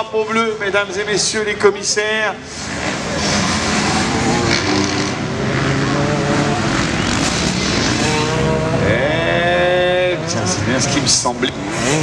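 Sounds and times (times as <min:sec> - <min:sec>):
motocross bikes racing past: 0:02.4 - 0:12.0
engine revving high: 0:02.5 - 0:12.0.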